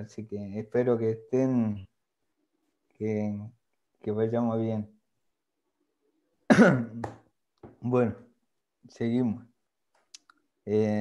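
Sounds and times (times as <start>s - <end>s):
man clearing his throat: 6.5s - 7.0s.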